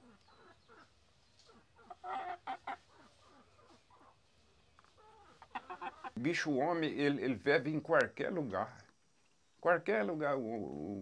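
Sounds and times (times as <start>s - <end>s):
hens clucking: 0.0s - 6.2s.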